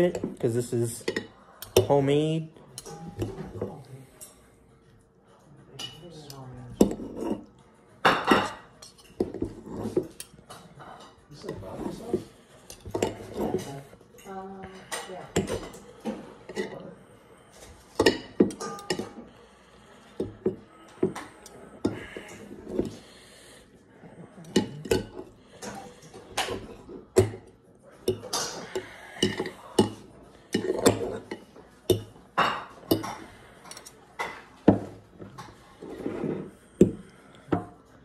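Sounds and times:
cutlery clinking on a dish: 0:02.7 - 0:04.4, 0:05.8 - 0:16.8, 0:17.6 - 0:23.1, 0:24.4 - 0:37.8.

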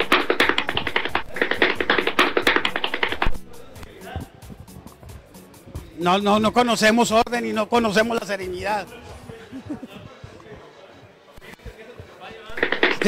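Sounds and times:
music with fast beat: 0:00.0 - 0:10.2.

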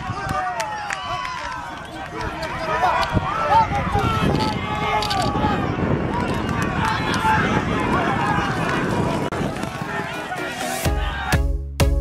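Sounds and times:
spectators shouting and cheering: 0:00.0 - 0:11.8.

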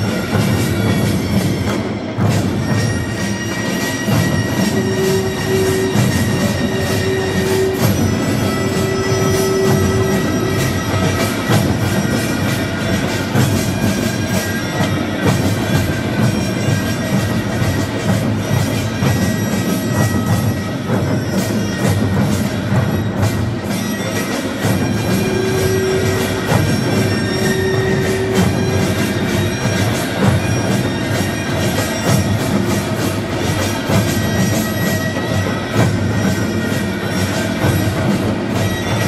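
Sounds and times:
fast drumming: 0:00.0 - 0:39.0
metal gongs clanging: 0:00.0 - 0:39.0.

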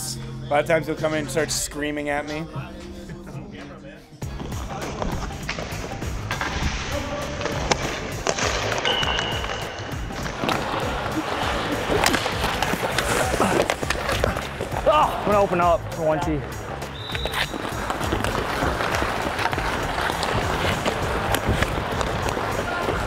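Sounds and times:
background music: 0:00.0 - 0:23.0
hockey sticks and pucks clacking: 0:04.4 - 0:23.0
skates scraping ice: 0:04.4 - 0:23.0.

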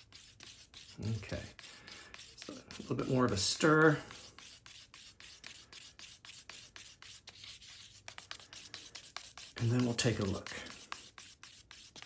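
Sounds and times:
stirrer scraping inside paper cup: 0:00.0 - 0:12.0.

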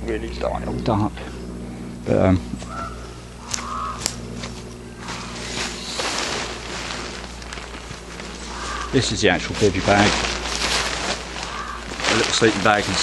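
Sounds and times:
nylon fabric rustling: 0:03.9 - 0:13.0.

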